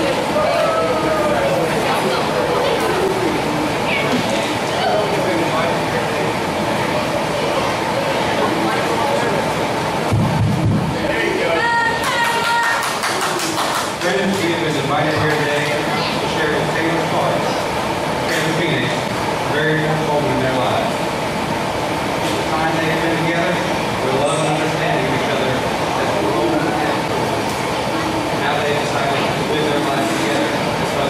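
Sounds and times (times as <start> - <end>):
low crowd noise: 0.0 - 31.0.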